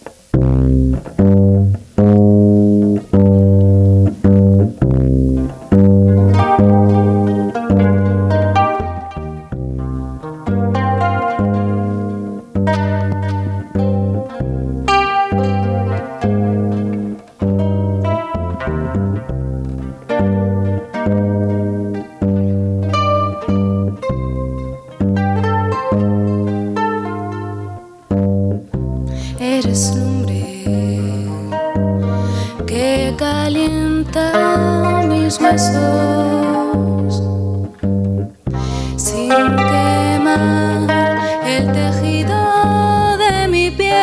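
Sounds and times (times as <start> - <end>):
acoustic guitar playing: 0.0 - 44.0
plucked double bass: 0.0 - 44.0.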